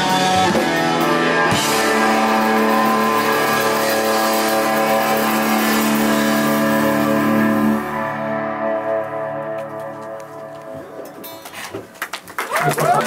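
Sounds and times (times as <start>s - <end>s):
distorted electric guitars and bass: 0.0s - 11.5s
cymbals washing: 1.5s - 7.8s.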